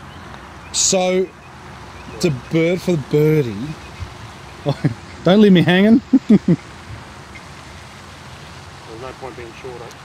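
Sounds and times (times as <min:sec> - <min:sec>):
steady background hiss: 0:00.0 - 0:10.0
man laughing: 0:04.7 - 0:06.7.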